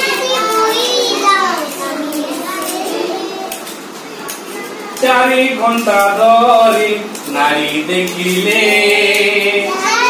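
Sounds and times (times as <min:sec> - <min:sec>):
young children talking: 0:00.0 - 0:05.1, 0:09.7 - 0:10.0.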